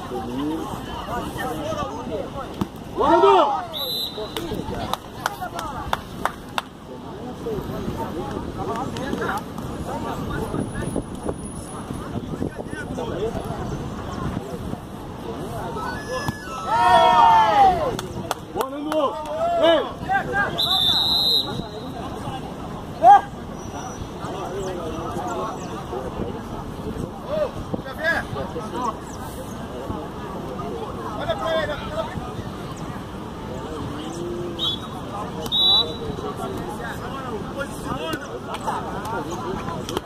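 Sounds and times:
crowd voices: 0.0 - 40.0
referee's whistle blasts: 3.7 - 4.4, 20.5 - 22.0, 34.6 - 36.2.

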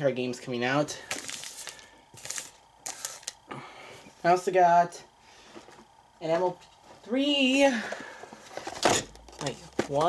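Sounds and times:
paper and foil packets rustling: 1.0 - 3.4.

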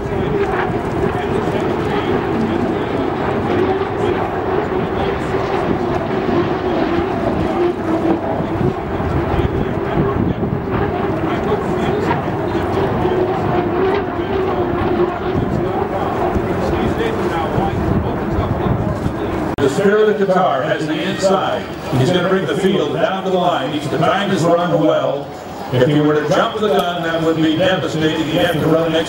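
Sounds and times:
wind noise on microphone: 0.0 - 19.9
hydroplane turbine engines droning: 0.0 - 29.0.

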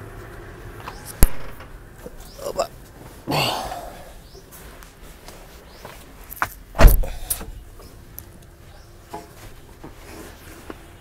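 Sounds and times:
heavy thump on vehicle body: 6.8 - 7.2.

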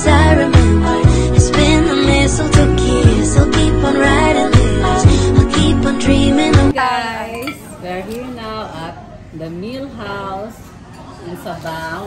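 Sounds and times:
dishes and cutlery clinking: 7.3 - 8.2.

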